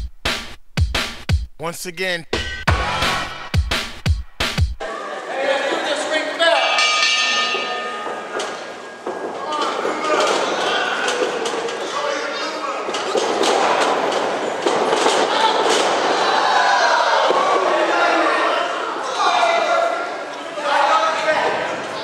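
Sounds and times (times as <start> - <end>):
crowd noise in a hall: 4.8 - 22.0.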